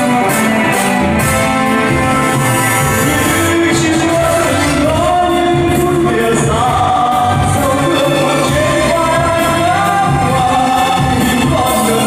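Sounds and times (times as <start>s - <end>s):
electronic keyboard accompaniment: 0.0s - 12.0s
man singing into microphone: 3.0s - 12.0s.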